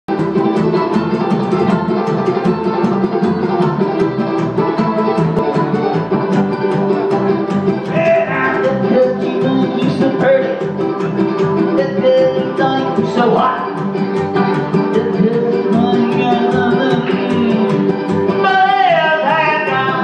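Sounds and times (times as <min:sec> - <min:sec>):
acoustic string band playing: 0:00.1 - 0:20.0.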